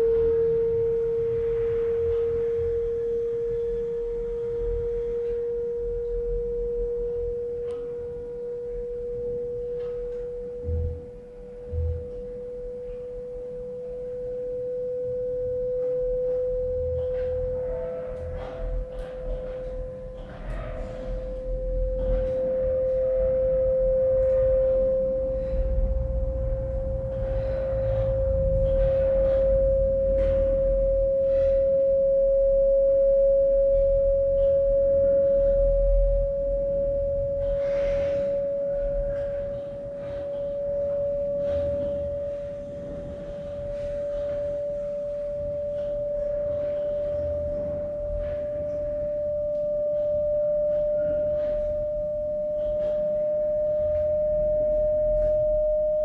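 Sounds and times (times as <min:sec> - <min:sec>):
low rumble: 0:00.0 - 0:56.0
steady pure tone: 0:00.0 - 0:56.0.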